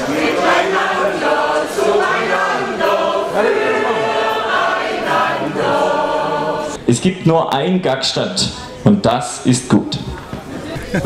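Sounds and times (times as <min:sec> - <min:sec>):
choir singing long notes: 0:00.0 - 0:06.8.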